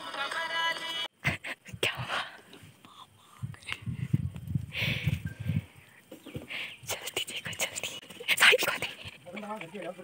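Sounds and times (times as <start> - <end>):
person whispering: 1.8 - 3.6, 6.8 - 9.0.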